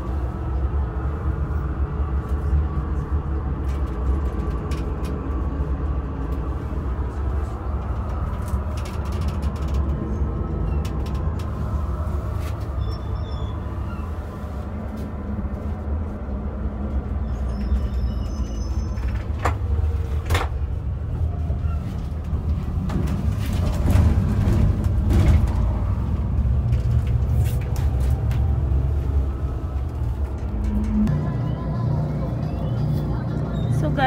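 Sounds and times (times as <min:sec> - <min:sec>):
bus rumbling on the road: 0:00.0 - 0:34.0.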